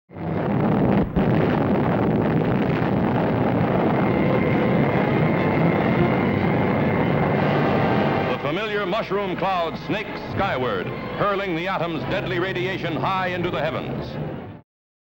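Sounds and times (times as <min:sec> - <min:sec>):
bomb blast roar: 0:00.1 - 0:12.6.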